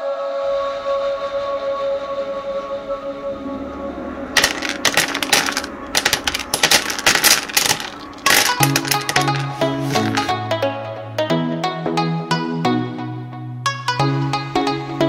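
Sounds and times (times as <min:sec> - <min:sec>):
small books clattering onto floor: 0:04.4 - 0:10.4.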